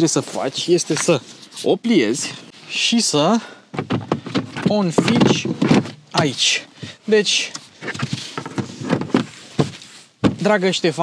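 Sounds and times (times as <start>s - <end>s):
cargo cover knocks and rustles: 3.8s - 6.3s, 7.8s - 10.6s.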